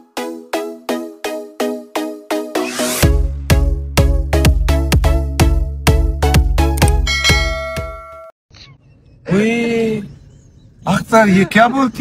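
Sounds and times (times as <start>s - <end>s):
bright bell ding: 7.1s - 8.3s.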